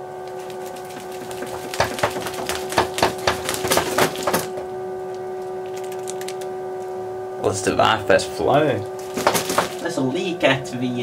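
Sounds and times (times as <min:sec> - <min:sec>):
electric pump humming: 0:00.0 - 0:11.0.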